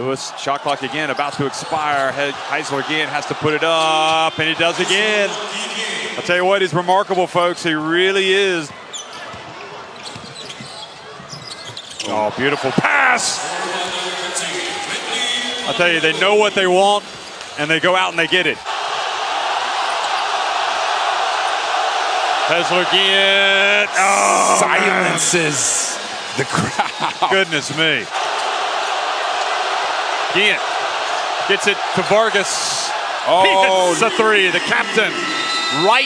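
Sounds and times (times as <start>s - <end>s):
arena crowd noise: 0.0s - 36.0s.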